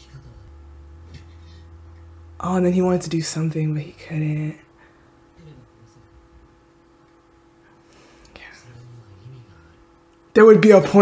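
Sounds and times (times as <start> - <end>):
faint electrical hum: 0.0 - 11.0
person whispering: 8.3 - 9.9
faint low voice: 8.4 - 9.8.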